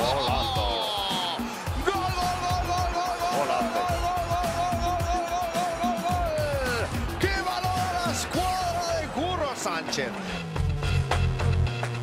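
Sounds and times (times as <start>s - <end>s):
commentator shouting goal: 0.0s - 10.2s.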